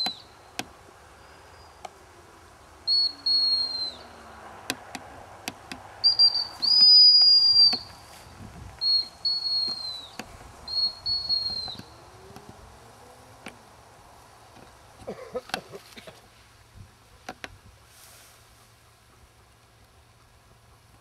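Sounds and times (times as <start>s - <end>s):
dog whistle blasts: 2.9s - 4.0s, 6.0s - 8.0s, 8.8s - 10.1s, 10.7s - 11.8s.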